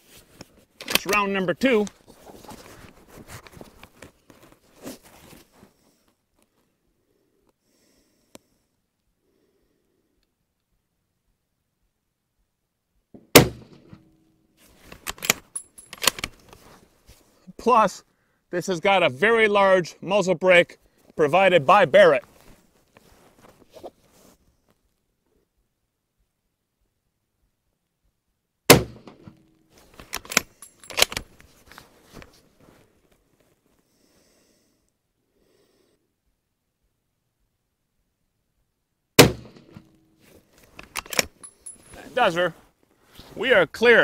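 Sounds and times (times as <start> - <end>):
clothing rustling: 0.0 - 6.6, 14.6 - 17.5, 22.1 - 24.8, 29.5 - 33.8, 39.8 - 43.6
rifle bolt clicks and clacks: 0.8 - 1.2, 14.9 - 16.6, 28.9 - 31.4, 40.6 - 42.0.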